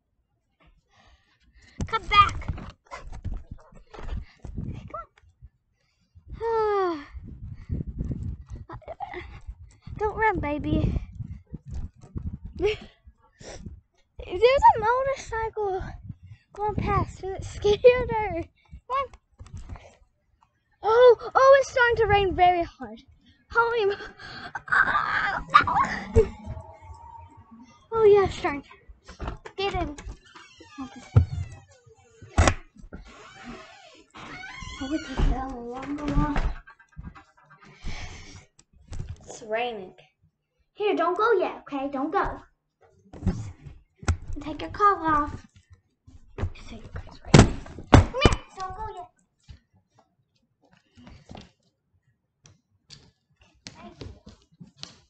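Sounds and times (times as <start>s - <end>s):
wind buffeting microphone: 6.4s - 12.9s, 25.4s - 27.6s
pet animal whining: 24.7s - 27.9s.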